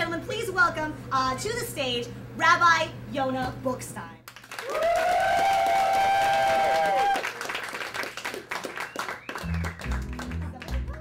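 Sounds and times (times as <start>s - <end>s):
audience clapping: 4.3s - 11.0s
rhythmic low bass line: 9.4s - 11.0s.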